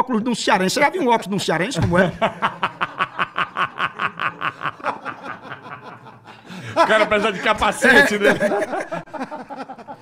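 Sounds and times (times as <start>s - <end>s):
men laughing hard: 2.0s - 10.0s.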